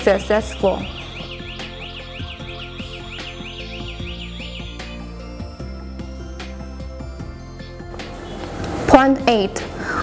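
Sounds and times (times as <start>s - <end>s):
background music: 0.0s - 10.0s
electronic alarm siren warbling: 0.7s - 5.4s.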